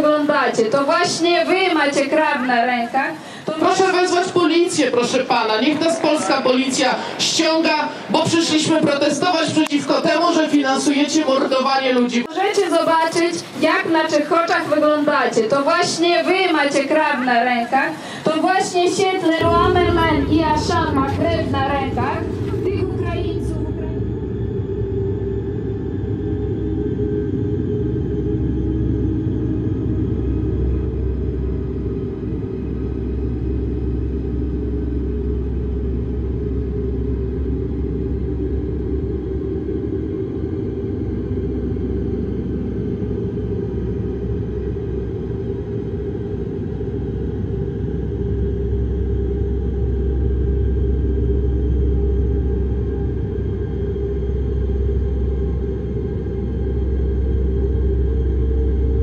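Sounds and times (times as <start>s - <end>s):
dark ambient drone music: 0.0s - 59.0s.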